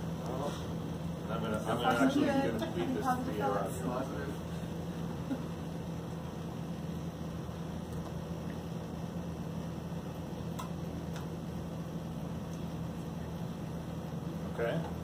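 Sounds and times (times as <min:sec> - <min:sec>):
electric water pump humming: 0:00.0 - 0:15.0.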